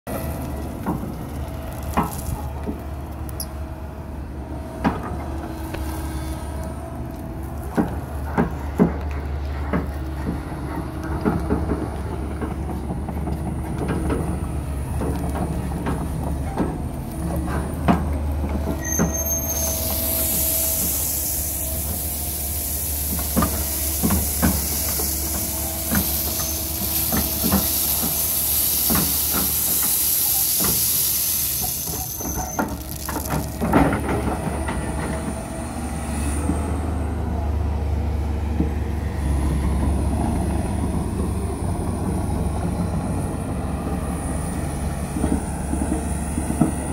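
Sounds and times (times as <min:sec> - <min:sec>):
gravel and dirt being dumped: 0:00.1 - 0:03.4, 0:16.9 - 0:35.0
excavator bucket and tracks clanking: 0:00.1 - 0:46.9
excavator diesel engine running: 0:00.1 - 0:46.9
loud hiss: 0:18.8 - 0:33.7.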